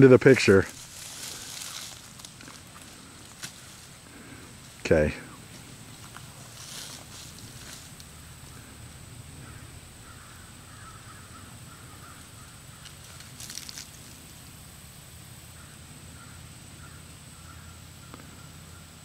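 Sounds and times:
distant bird calls: 0.0 - 19.0
rustle: 0.0 - 19.0.

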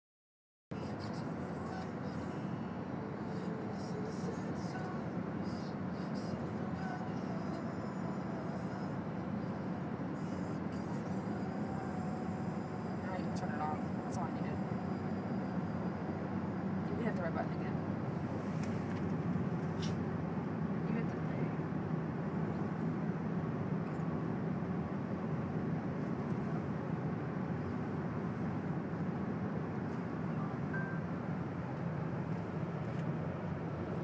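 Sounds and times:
car road and engine noise: 0.7 - 34.0.

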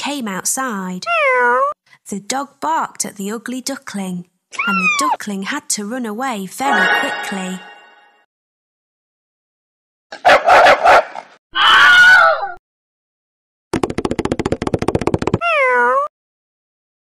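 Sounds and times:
cartoon barks: 10.2 - 12.5
high bending animal cry: 11.6 - 12.6.

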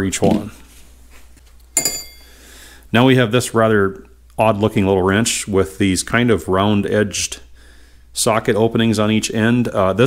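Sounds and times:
metal wrench clinking on tools: 1.8 - 2.3.

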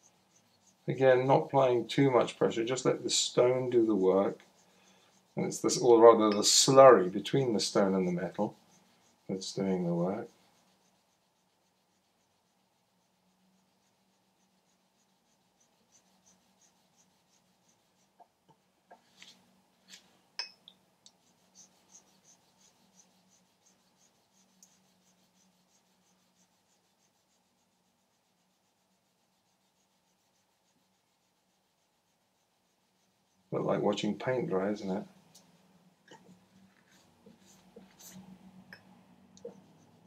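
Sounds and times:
wet stone rubbing on copper: 0.0 - 1.0, 2.1 - 18.2, 21.1 - 33.8.

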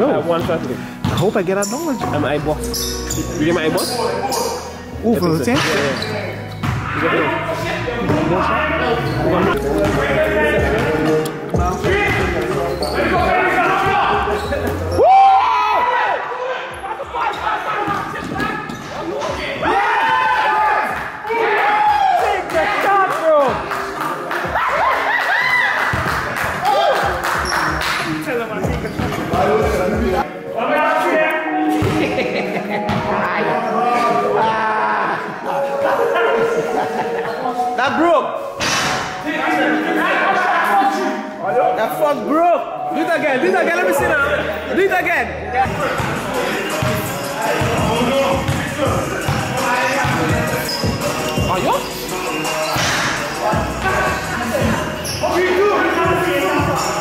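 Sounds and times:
gym hall echo: 3.8 - 57.0.

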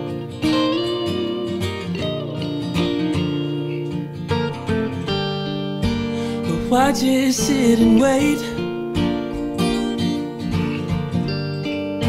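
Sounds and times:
acoustic guitar: 0.0 - 12.0
electric guitar: 0.0 - 12.0.

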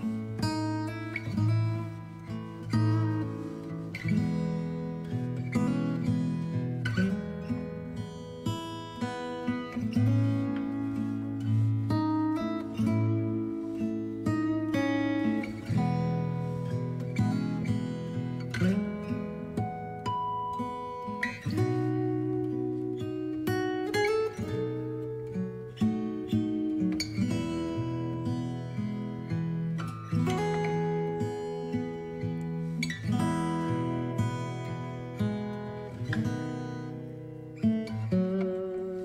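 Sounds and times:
acoustic guitar chords: 0.0 - 39.0.

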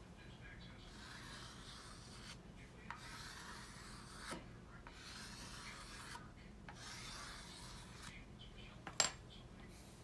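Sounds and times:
scratchy rubbing on hard surface: 0.7 - 8.3.

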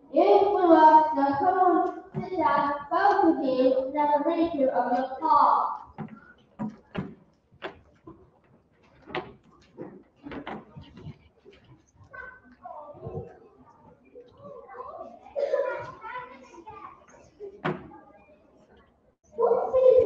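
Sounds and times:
sharp knocks and clicks: 5.9 - 11.7.

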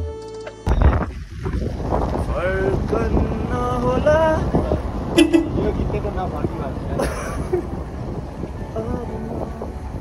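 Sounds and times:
vehicle road rumble: 0.0 - 10.0
wind buffeting microphone: 0.7 - 10.0.

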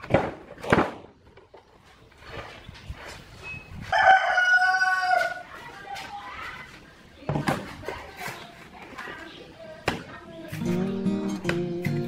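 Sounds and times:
rooster crowing: 3.9 - 5.4.

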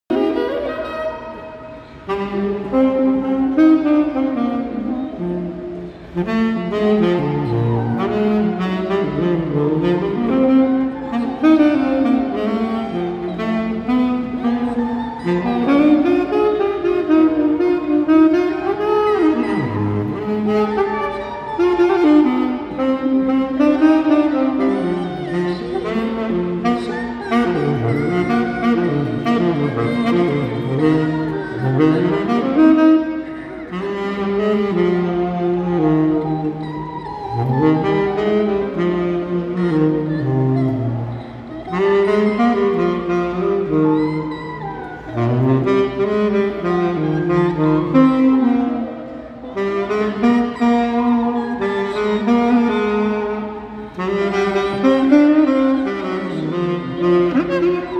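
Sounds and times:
saxophone melody: 0.1 - 57.9.

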